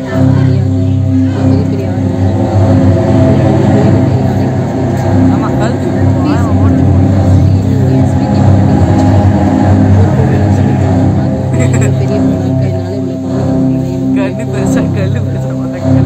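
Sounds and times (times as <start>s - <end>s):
deep steady rumble: 0.0s - 16.0s
soundtrack over loudspeakers: 0.0s - 16.0s
voices: 0.0s - 16.0s.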